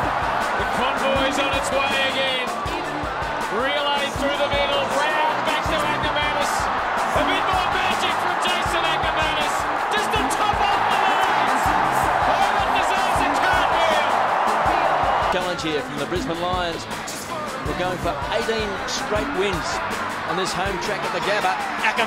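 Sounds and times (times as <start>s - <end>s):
backing music with steady beat: 0.0s - 22.0s
stadium crowd cheering: 0.0s - 22.0s.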